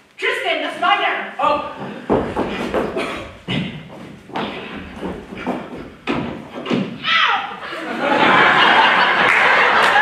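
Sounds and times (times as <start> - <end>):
heavy thuds on stage floor: 1.8 - 7.0.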